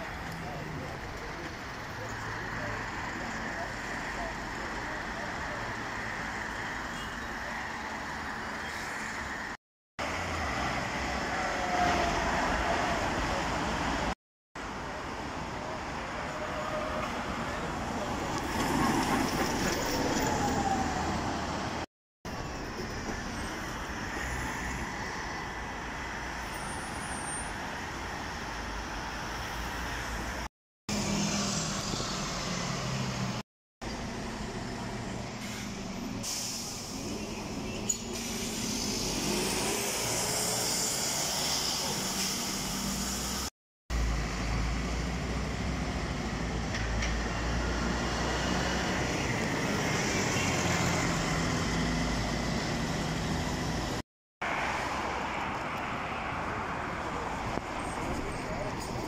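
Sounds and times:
diesel bus engines accelerating: 0:30.1 - 0:54.0
air brake hiss: 0:35.4 - 0:37.1, 0:38.0 - 0:39.1.

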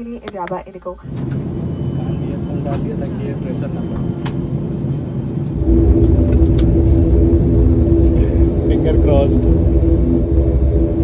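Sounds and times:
airliner engine rumble in cabin: 0:00.0 - 0:11.0
droning tone: 0:01.0 - 0:11.0.

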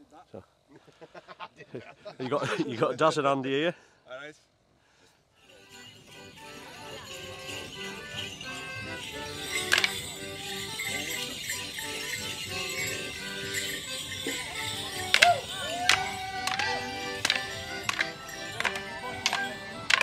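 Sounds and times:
bells jingling: 0:05.4 - 0:20.0
folk dance tune played live: 0:05.5 - 0:20.0
wooden sticks clacking together: 0:09.5 - 0:11.5, 0:12.7 - 0:20.0.

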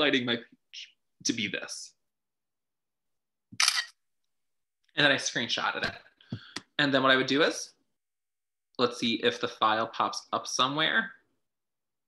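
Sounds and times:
camera shutter click: 0:03.6 - 0:04.0.

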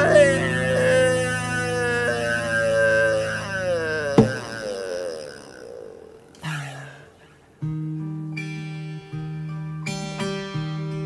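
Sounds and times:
wavering tone sliding down: 0:00.0 - 0:06.4.

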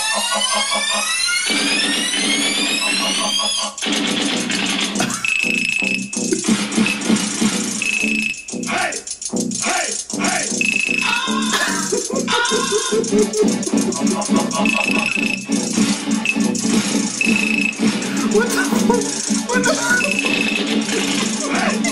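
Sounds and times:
instrumental beat: 0:04.9 - 0:21.9
short high beep: 0:07.8 - 0:08.5, 0:10.6 - 0:11.2, 0:14.6 - 0:15.5, 0:17.2 - 0:17.8.

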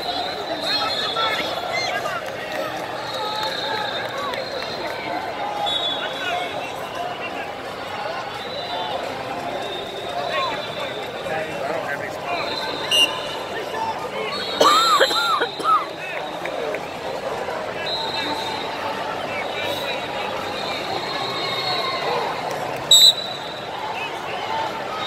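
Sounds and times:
crowd chattering in large hall: 0:00.0 - 0:25.0.

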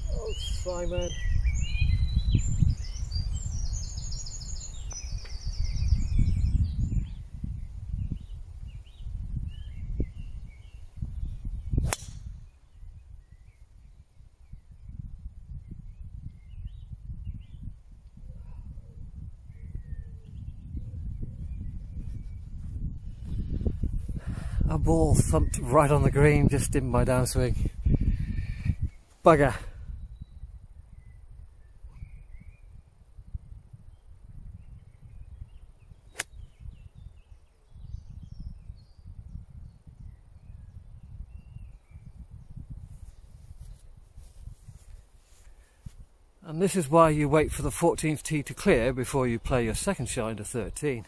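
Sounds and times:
low rumbling microphone noise: 0:00.0 - 0:51.0
golf club hitting ball: 0:11.8 - 0:12.3, 0:36.2 - 0:36.4.

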